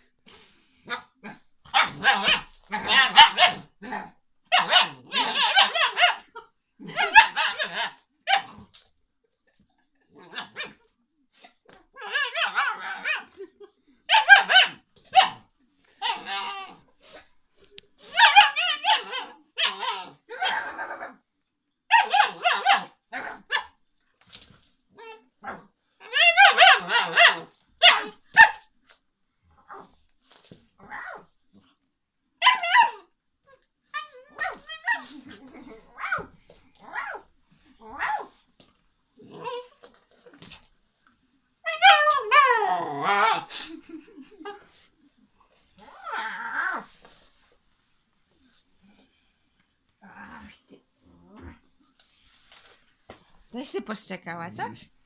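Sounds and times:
dog barking: 0:01.7 - 0:03.7, 0:04.5 - 0:06.2, 0:14.1 - 0:15.5, 0:18.2 - 0:19.8, 0:21.9 - 0:23.7, 0:26.3 - 0:28.6.

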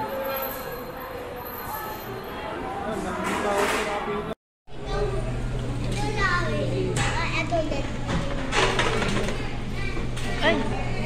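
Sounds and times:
adults and children talking: 0:00.0 - 0:11.0.

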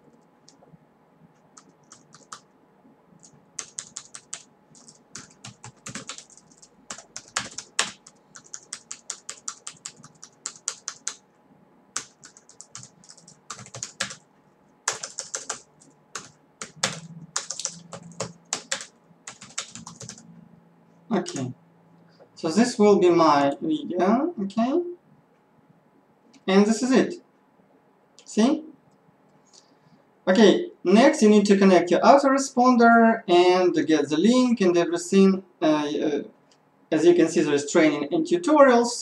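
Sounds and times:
typing on computer keyboard: 0:01.6 - 0:02.4, 0:03.2 - 0:11.2, 0:12.0 - 0:14.2, 0:14.8 - 0:20.2.

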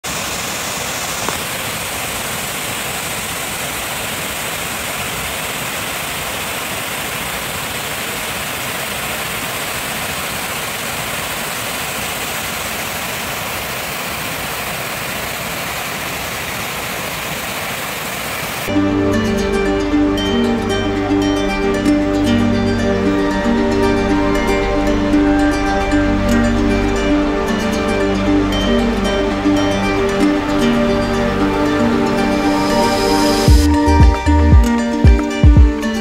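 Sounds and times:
waterfall rushing: 0:00.0 - 0:36.0.

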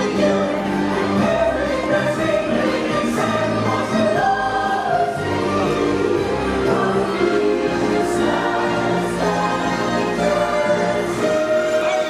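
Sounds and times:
choir singing: 0:00.0 - 0:12.0
orchestral music: 0:00.0 - 0:12.0.

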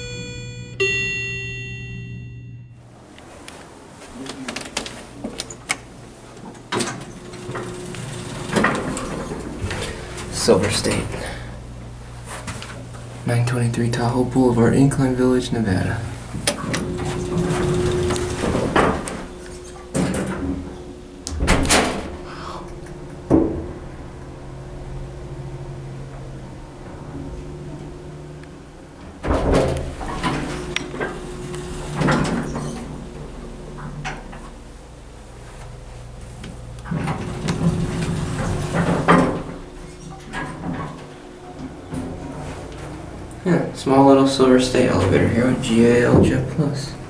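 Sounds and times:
quiet background hum: 0:00.0 - 0:47.0
elevator doors sliding shut: 0:03.7 - 0:13.2, 0:16.2 - 0:43.4
heavy door thud: 0:21.3 - 0:22.3, 0:29.2 - 0:32.5.

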